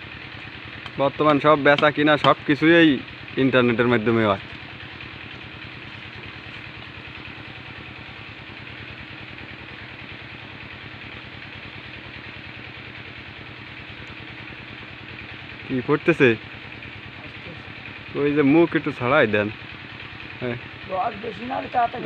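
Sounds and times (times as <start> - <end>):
small engine droning: 0.0 - 22.0.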